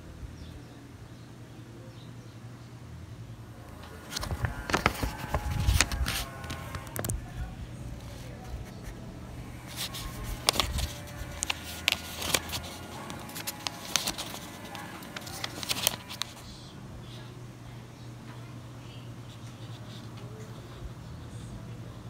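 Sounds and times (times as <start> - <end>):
crisp paper clicks: 3.7 - 7.2, 8.6 - 16.4
paper sheets rustling: 3.7 - 7.2, 8.0 - 16.5.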